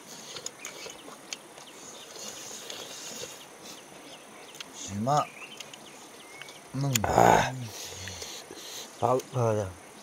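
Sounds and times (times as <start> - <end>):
insects chirping: 0.1 - 10.0.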